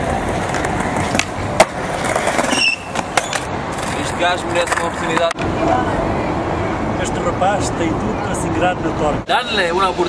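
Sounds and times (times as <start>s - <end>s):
skateboard wheels rolling on stone: 0.0s - 5.3s
skateboard clacks: 0.0s - 5.4s.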